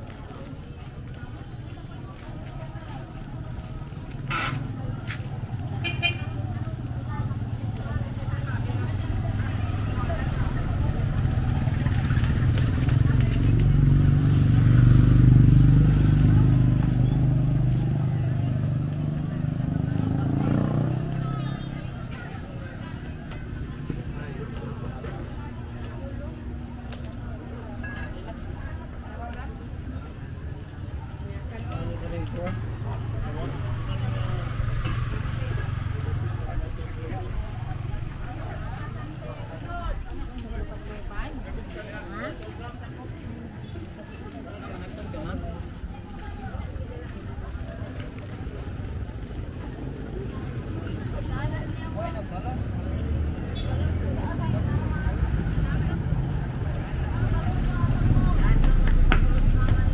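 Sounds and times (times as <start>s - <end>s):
passers-by talking: 0.0s - 59.9s
vehicle engine rumble: 0.0s - 59.9s
motorcycle engine passing: 4.1s - 24.5s.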